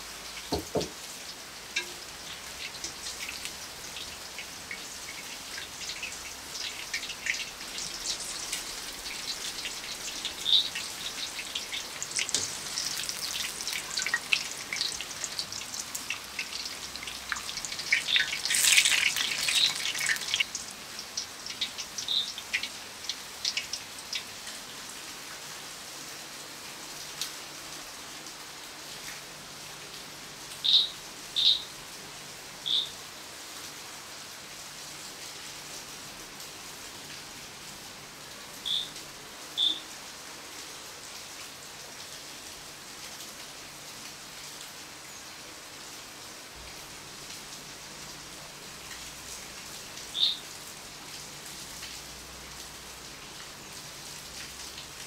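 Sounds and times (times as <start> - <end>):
steady rain falling: 0.0 - 55.0
bird chirping: 10.4 - 11.9, 50.1 - 50.4.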